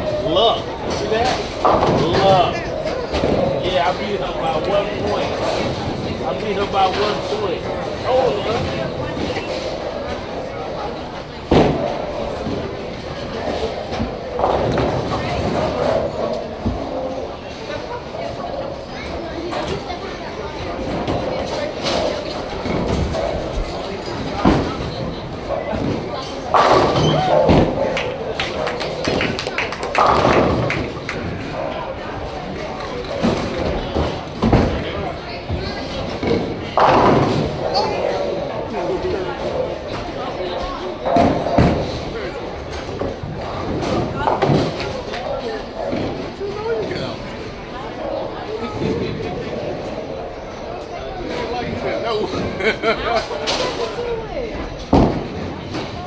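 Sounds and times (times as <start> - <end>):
background chatter: 0.0 - 56.0
bowling balls and pins rumbling: 0.0 - 56.0
bowling balls hitting pins: 20.8 - 31.7, 35.8 - 38.5.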